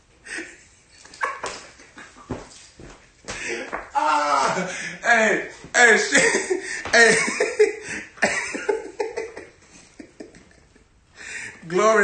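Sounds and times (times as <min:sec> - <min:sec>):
man's high wordless cries: 0:03.5 - 0:06.2.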